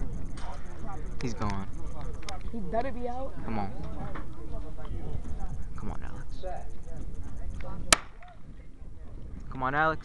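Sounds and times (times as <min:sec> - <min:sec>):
crowd chatter: 0:00.0 - 0:10.0
starter's pistol firing: 0:07.9 - 0:08.4.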